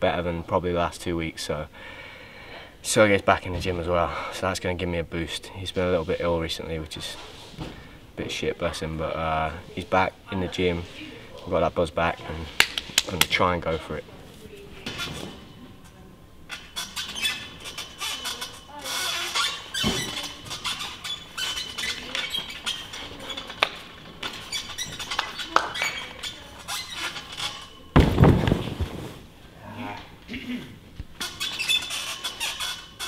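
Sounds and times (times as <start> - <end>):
clicks and squeals from grips: 16.5 - 23.6, 24.2 - 27.7, 31.2 - 33.0
horizontal bar creaking and squeaking: 16.5 - 28.7, 31.1 - 33.0
heavy thump on crash mat: 28.0 - 29.3.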